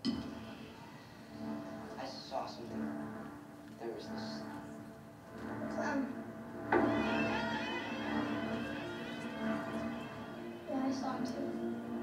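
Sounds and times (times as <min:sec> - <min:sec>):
horror trailer music over speakers: 0:00.0 - 0:12.0.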